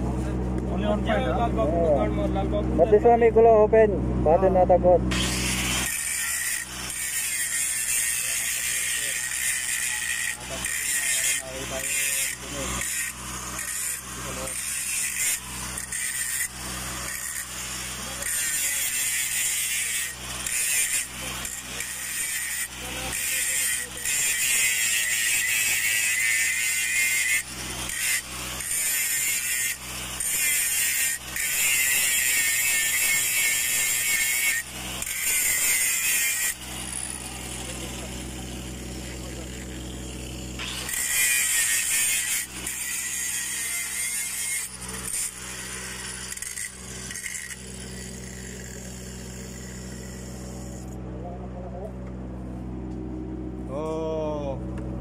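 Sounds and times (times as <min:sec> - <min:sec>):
steady low hum: 0:00.0 - 0:55.0
angle grinder grinding metal: 0:04.3 - 0:51.0.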